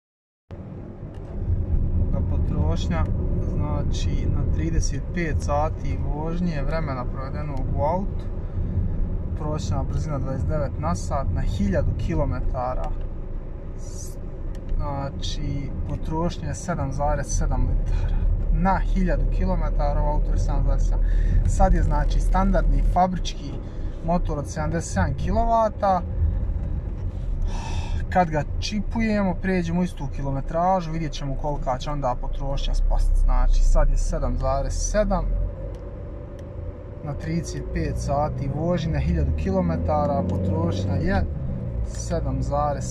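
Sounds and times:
car engine and road rumble: 0.5s - 42.9s
faint small clicks: 14.5s - 14.8s
sharp intake of breath: 27.4s - 28.0s.

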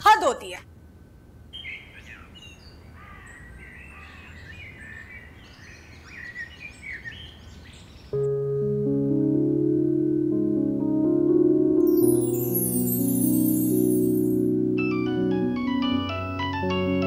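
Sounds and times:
background music with held tones: 8.2s - 17.0s.

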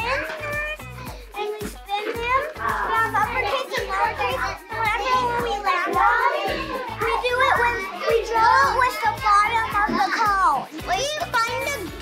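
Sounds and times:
background music with steady beat: 0.0s - 12.0s
children chattering: 0.0s - 12.0s.

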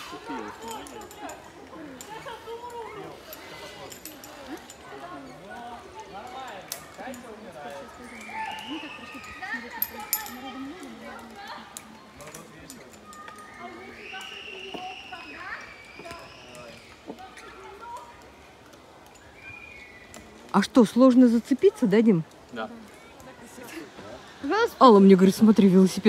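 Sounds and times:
people talking and calling: 0.0s - 26.0s.

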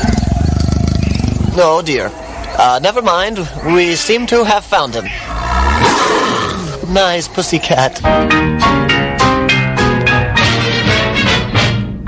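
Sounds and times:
leopard growling: 0.0s - 8.0s.

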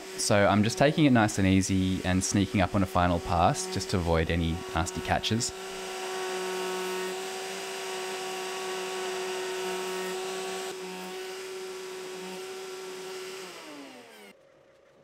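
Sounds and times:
router whining at full speed: 0.0s - 14.4s
router winding down: 0.0s - 14.4s.

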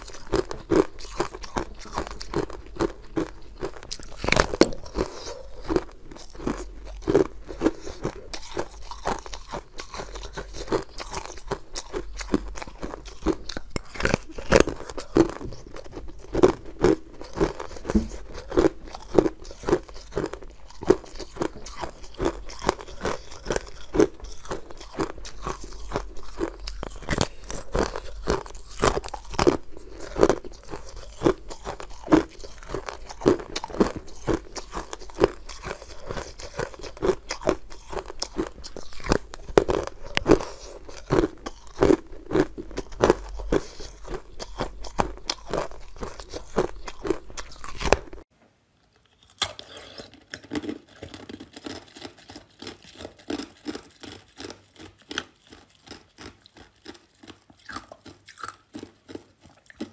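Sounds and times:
chewing hard ice crunches: 0.0s - 48.3s, 49.4s - 59.9s.

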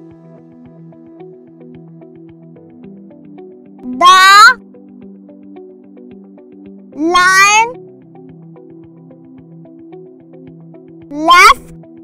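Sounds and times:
rising cry: 3.9s - 4.6s, 7.0s - 7.8s, 11.2s - 11.7s.

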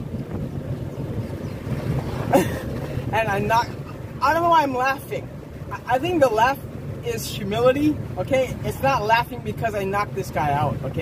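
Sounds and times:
car cabin road and engine rumble: 0.0s - 11.0s
man laughing: 2.3s - 2.8s, 3.5s - 4.2s.

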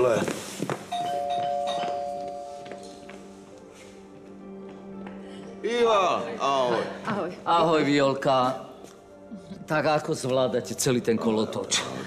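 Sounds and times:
two-tone doorbell chime: 0.9s - 3.0s.

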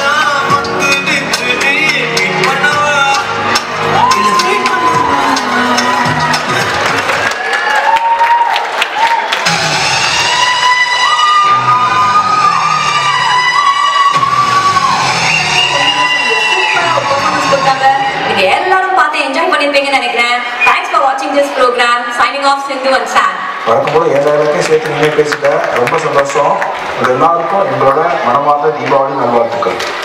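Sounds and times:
dance music with singing: 0.0s - 7.2s, 9.4s - 19.8s
audience cheering and whooping: 3.3s - 18.5s.

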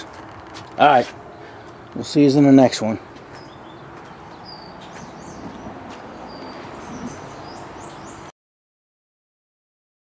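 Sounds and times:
high bird chirps: 3.3s - 8.3s.

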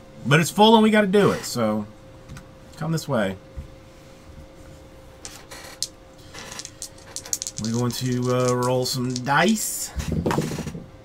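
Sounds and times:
faint steady hum: 0.0s - 11.0s
dice clicking and rattling: 5.2s - 9.7s.

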